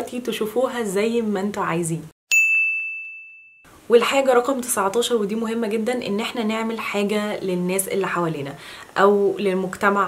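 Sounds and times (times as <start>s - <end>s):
bell-like ding: 2.3s - 3.7s.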